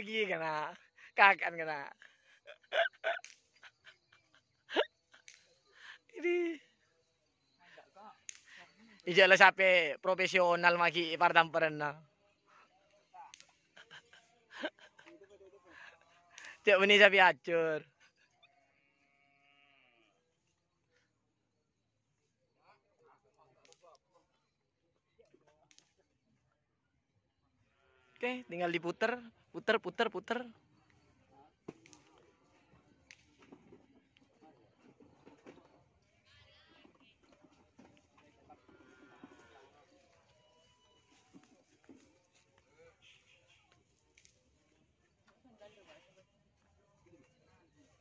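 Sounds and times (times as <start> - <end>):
distant bleat-like animal call: 18.6 - 20.2.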